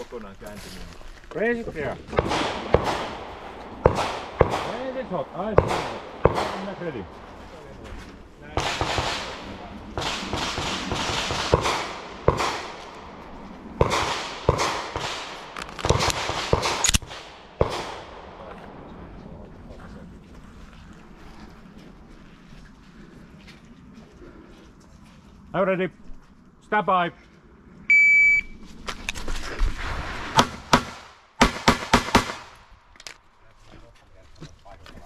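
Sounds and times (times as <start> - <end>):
low background noise: 0.0 - 29.7
handgun shots echoing: 2.2 - 6.8, 10.0 - 12.8, 13.8 - 18.1.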